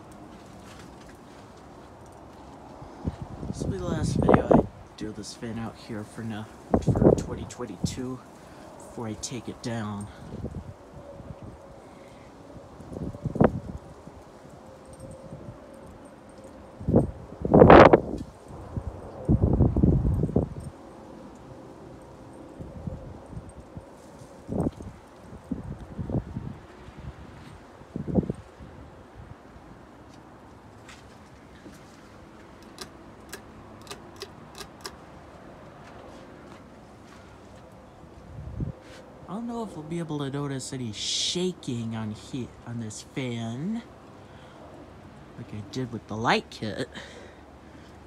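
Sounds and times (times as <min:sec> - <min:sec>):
light quick clicks: 0:32.6 - 0:35.0.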